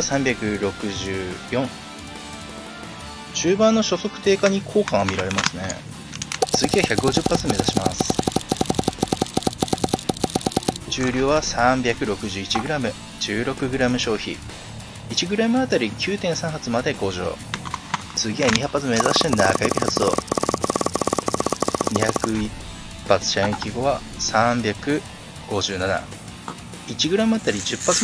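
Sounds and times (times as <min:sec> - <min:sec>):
gas pistol rapid shots: 0:06.4 - 0:10.8, 0:19.0 - 0:22.4.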